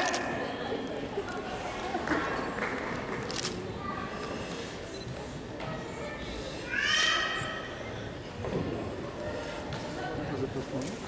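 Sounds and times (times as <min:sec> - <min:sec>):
low murmur of room noise: 0:00.0 - 0:11.0.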